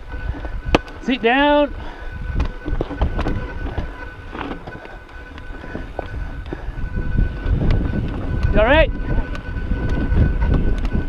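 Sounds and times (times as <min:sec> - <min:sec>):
bike knocking and rattling: 0:00.0 - 0:11.0
bike tyres rumbling on rock: 0:00.0 - 0:11.0
wind buffeting microphone: 0:00.0 - 0:11.0.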